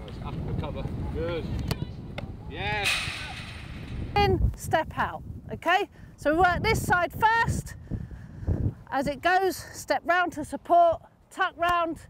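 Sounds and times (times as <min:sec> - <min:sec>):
wind rumble on microphone: 0:00.0 - 0:09.3.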